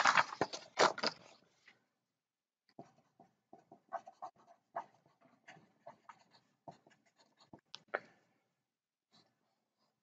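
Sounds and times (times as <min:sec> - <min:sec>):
marker scratching on paper: 0:02.7 - 0:07.7.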